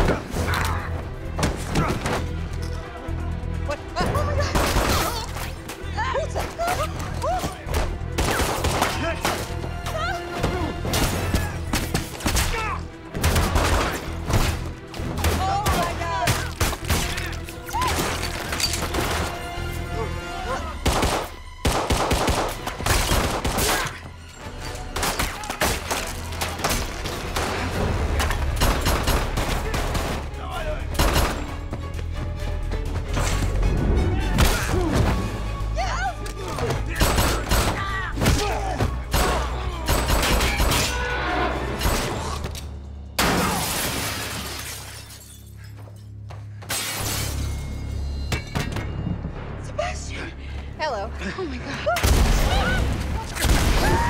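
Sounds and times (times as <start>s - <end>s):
dramatic music score: 0.0s - 54.0s
gunshots: 4.4s - 5.3s, 8.1s - 9.6s, 13.1s - 14.6s, 20.8s - 24.0s, 25.0s - 31.5s, 36.9s - 41.0s
shouts and grunts: 37.7s - 39.9s, 51.6s - 54.0s.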